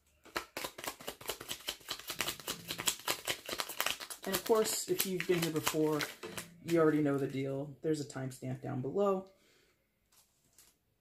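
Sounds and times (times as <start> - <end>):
cards being shuffled: 0.0 - 7.3.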